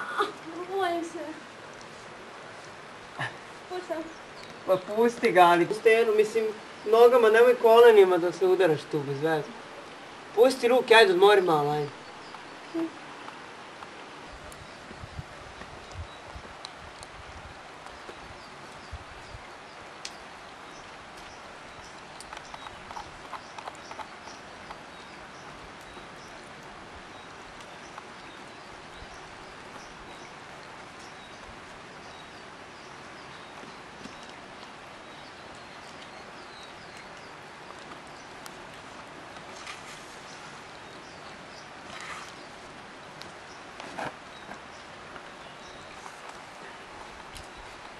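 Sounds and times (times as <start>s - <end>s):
outdoor background hiss: 0.0s - 47.9s.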